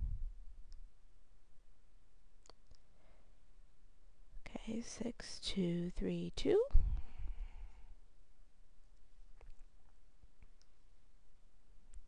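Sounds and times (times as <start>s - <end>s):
soft whispered speech: 4.4s - 6.9s.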